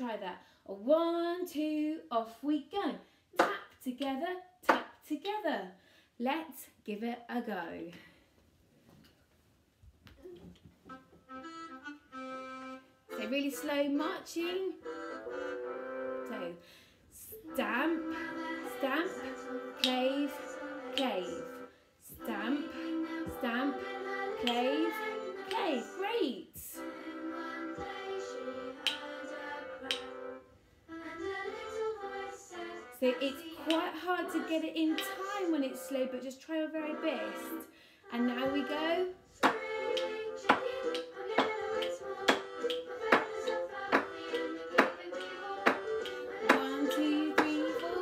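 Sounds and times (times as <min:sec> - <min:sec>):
children's song backing track: 0:10.2 - 0:48.0.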